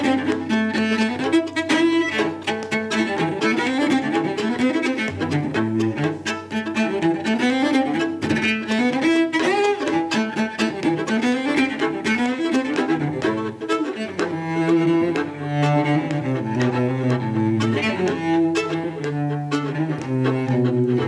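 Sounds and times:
cello playing: 0.0 - 21.0
fiddle playing: 0.0 - 21.0.

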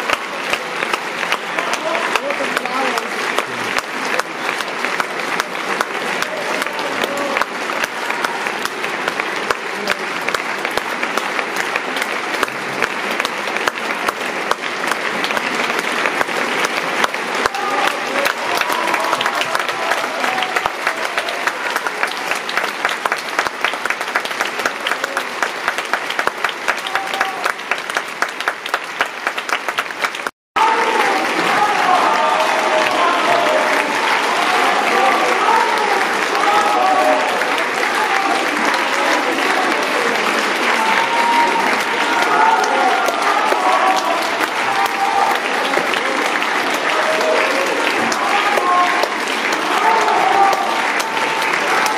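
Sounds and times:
audience applauding: 0.0 - 51.9.

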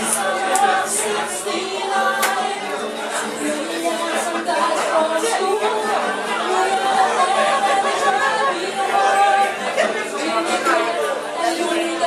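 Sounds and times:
crowd of overlapping voices: 0.0 - 12.0.

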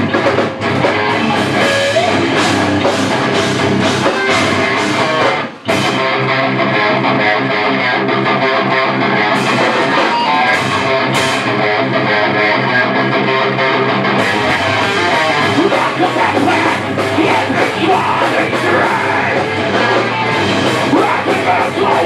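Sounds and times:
heavy metal band playing: 0.0 - 22.0.

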